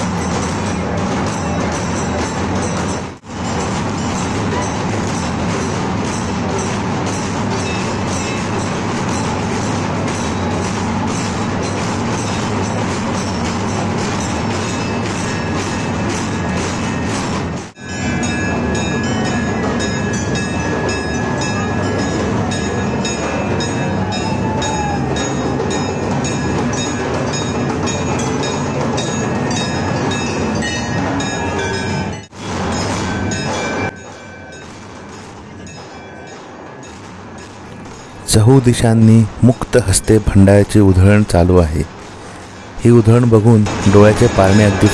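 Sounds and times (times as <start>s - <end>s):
sustained ringing high tones: 0.0s - 40.1s, 42.0s - 44.9s
crowd din: 37.8s - 44.9s.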